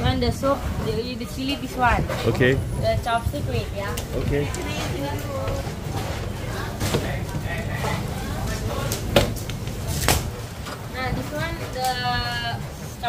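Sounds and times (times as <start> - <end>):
indistinct voices talking: 0.0 - 13.0
low background noise: 0.0 - 13.0.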